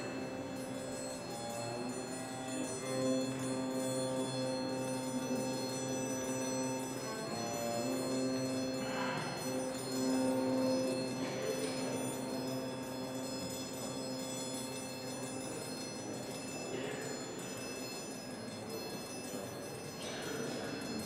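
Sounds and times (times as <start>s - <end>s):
string quartet held tones: 0.0s - 17.2s.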